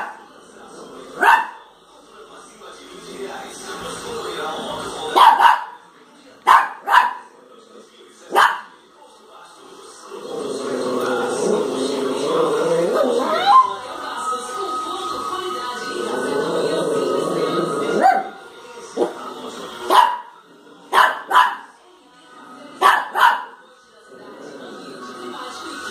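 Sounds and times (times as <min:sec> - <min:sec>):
small dog barking: 0:01.2 - 0:01.6, 0:05.2 - 0:05.8, 0:06.5 - 0:07.2, 0:08.3 - 0:08.7, 0:18.0 - 0:18.3, 0:19.9 - 0:20.3, 0:20.9 - 0:21.7, 0:22.8 - 0:23.6.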